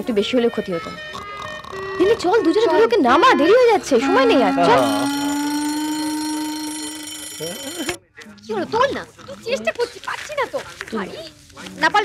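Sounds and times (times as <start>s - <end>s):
alarm clock buzzing: 0.5s - 8.0s.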